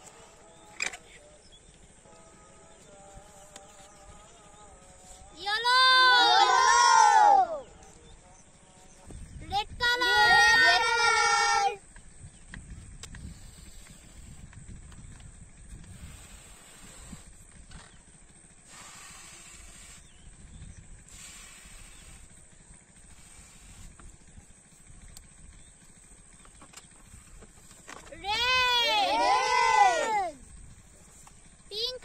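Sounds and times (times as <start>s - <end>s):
breaths blowing up balloon: 15.8s - 17.5s, 18.6s - 20.2s, 21.1s - 22.4s.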